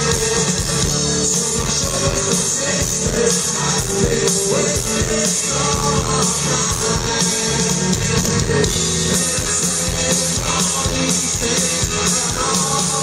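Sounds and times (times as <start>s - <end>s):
live rock band playing: 0.0s - 13.0s
singer's voice: 0.0s - 13.0s.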